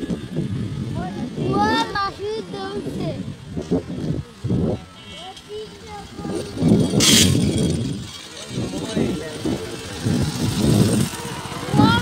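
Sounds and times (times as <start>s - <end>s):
people talking and calling: 0.0s - 12.0s.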